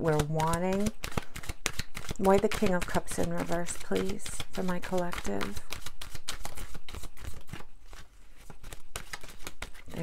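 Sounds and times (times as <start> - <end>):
playing cards being shuffled: 0.1 - 10.0.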